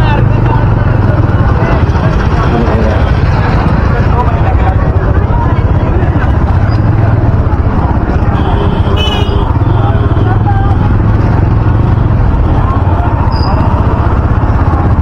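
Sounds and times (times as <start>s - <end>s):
motorcycle engine low: 0.0s - 15.0s
people chattering: 0.0s - 15.0s.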